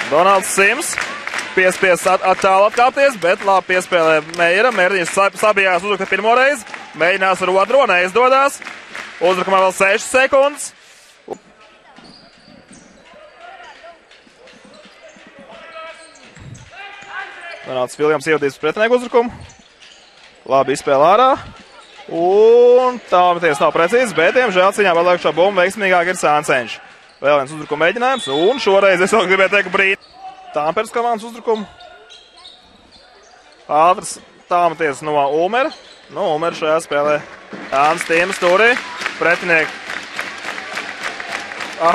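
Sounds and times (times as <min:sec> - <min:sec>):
faint voices of players and crowd: 0:00.0 - 0:41.9
ball bouncing on hardwood court: 0:13.6 - 0:17.7.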